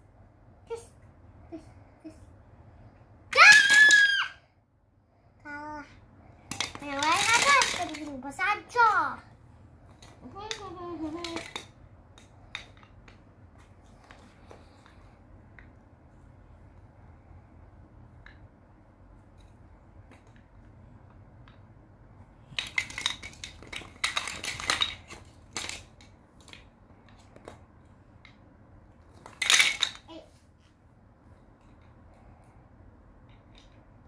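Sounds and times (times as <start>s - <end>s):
toy blocks clattering: 3.3s - 4.3s, 6.4s - 9.0s, 9.9s - 13.2s, 22.4s - 27.6s, 29.1s - 30.2s.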